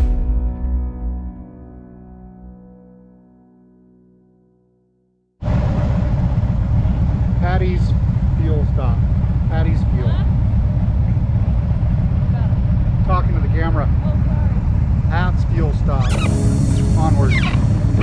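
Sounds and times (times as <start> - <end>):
motorcycle engine idling: 5.4 - 18.0
muffled voices talking: 6.8 - 10.3, 12.3 - 17.7.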